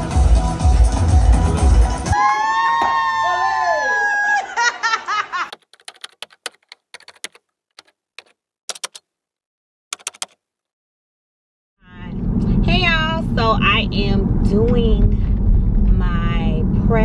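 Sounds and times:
typewriter key clicks: 5.5 - 9.0, 10.0 - 10.4.

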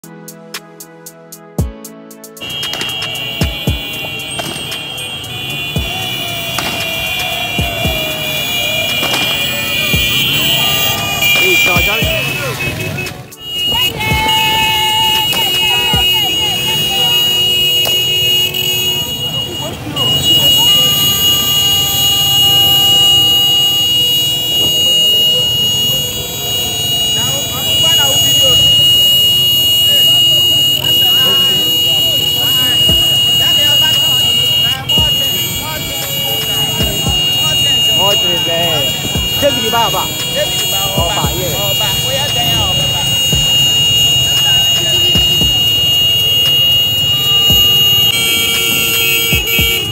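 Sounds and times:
music: 0.0 - 49.9
crowd voices: 2.4 - 49.9
motorbikes passing: 2.4 - 49.9.

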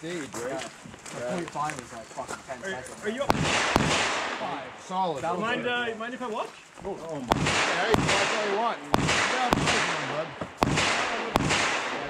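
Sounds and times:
gunshots: 3.2 - 5.0, 7.3 - 12.0
people talking faintly: 6.8 - 12.0.

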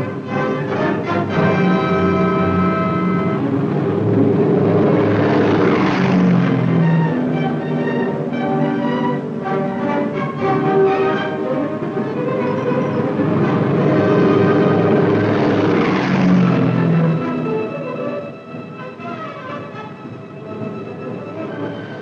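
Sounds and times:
orchestral film score: 0.0 - 22.0
propeller plane engines droning: 0.0 - 22.0.

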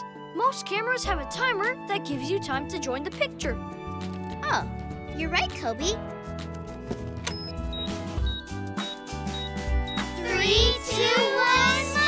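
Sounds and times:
cartoon background music: 0.0 - 12.0
short high beeps: 7.3 - 10.2.

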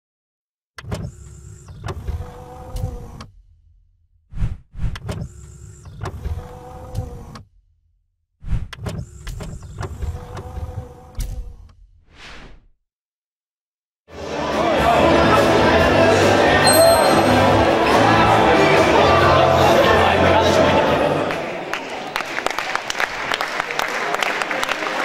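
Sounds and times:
mechanical whirring and sliding: 0.8 - 3.6, 4.3 - 7.6, 8.4 - 12.7.

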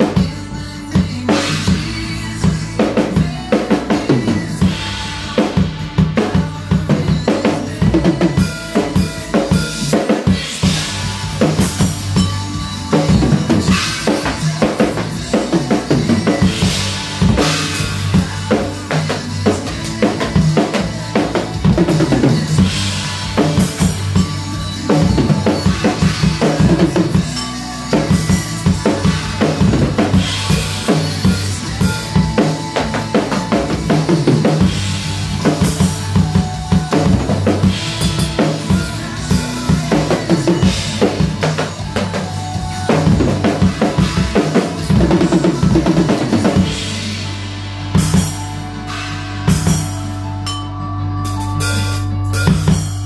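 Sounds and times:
drum kit played hard: 0.0 - 53.0
recorded rock backing track: 0.0 - 53.0.

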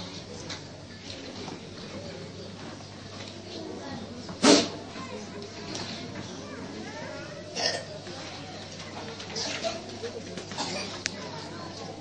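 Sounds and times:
faint crowd voices: 0.0 - 12.0.

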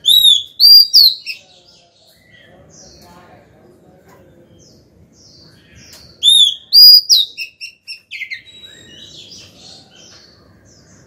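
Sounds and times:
bird whistling and chirping: 0.0 - 1.4, 6.2 - 9.5.

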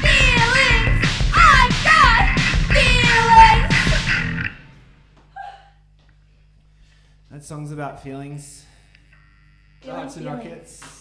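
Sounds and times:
electric band chord ringing: 0.0 - 5.0
amplifier hum: 0.0 - 11.0.

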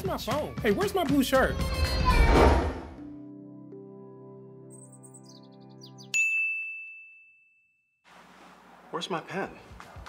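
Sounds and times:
music: 0.0 - 6.2.

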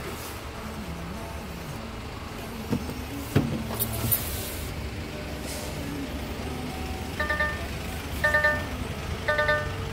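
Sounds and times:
diesel engine idling: 0.0 - 9.9
dashboard warning chime beeps: 7.2 - 9.9.

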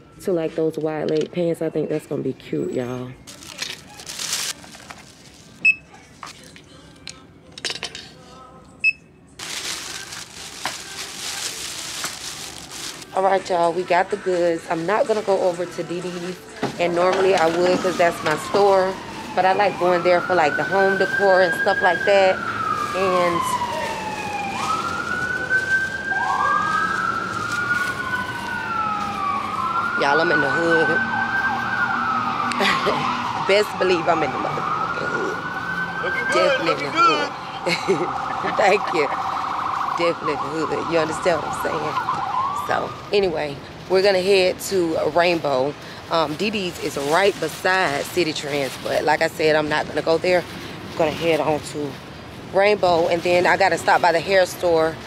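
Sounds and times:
rustling and crinkling: 3.2 - 6.8, 9.4 - 36.9, 37.7 - 55.0
emergency siren wailing: 13.1 - 44.6.

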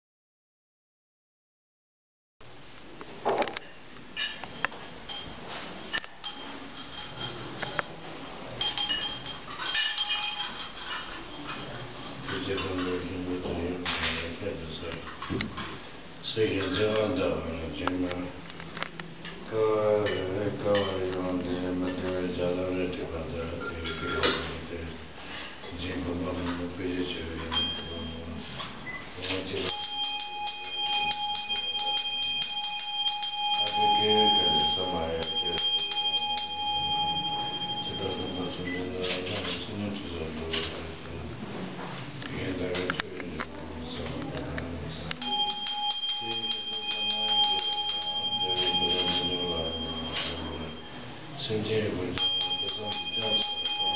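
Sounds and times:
bell ringing: 8.6 - 10.9, 29.7 - 38.9, 45.2 - 51.2, 52.2 - 53.9.

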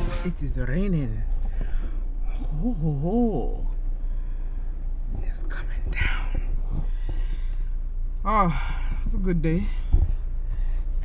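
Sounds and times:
low hum inside a car: 0.0 - 11.0
person whispering: 5.1 - 6.6.

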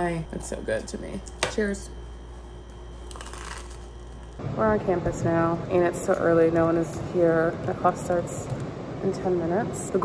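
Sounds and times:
bagel crunching: 3.0 - 4.4.

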